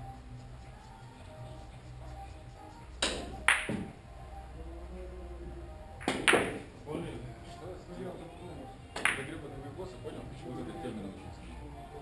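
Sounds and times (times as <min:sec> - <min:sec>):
billiard balls clacking: 0:06.0 - 0:06.7.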